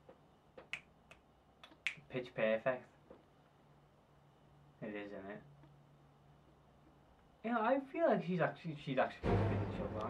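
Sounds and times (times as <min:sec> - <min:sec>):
fingers snapping: 0:00.6 - 0:02.1.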